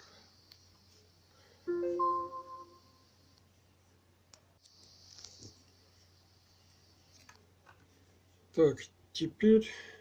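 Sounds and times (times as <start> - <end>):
low steady hum: 0.0 - 9.2.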